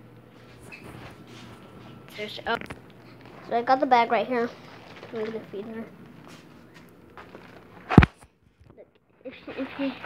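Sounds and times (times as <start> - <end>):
bag crinkling: 4.6 - 6.2, 7.2 - 8.1
sharp smack: 7.9 - 8.2.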